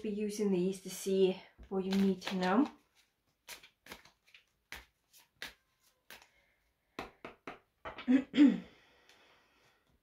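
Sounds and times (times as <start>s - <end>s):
cards shuffling: 1.8s - 6.4s.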